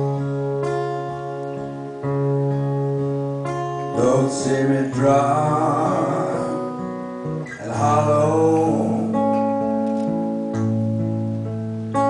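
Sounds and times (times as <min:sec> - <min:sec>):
guitar chords strummed: 0:00.0 - 0:12.0
person singing: 0:03.9 - 0:09.7.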